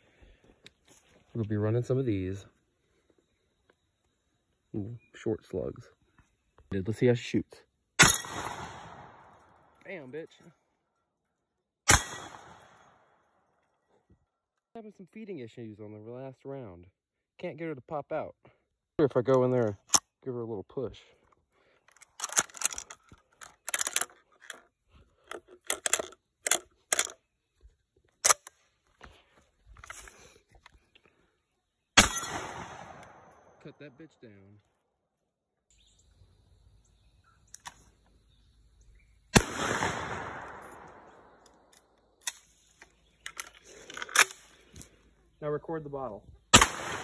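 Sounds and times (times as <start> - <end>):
gunshot echo: 8.0 - 9.5, 11.9 - 12.9, 32.0 - 33.6, 39.4 - 41.4, 46.5 - 47.0
sharp clicks and knocks: 21.9 - 27.2
shotgun action metallic clicks: 21.9 - 27.2, 28.2 - 28.6, 37.5 - 37.9, 39.4 - 44.5.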